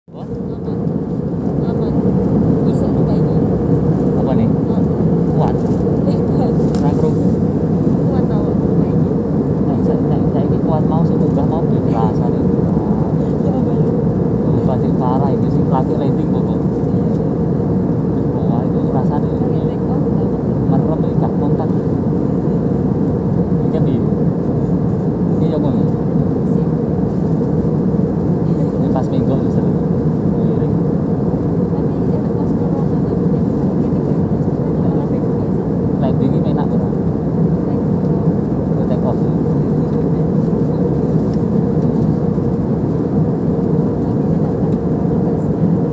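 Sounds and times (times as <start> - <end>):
airliner cabin roar: 0.1 - 45.9.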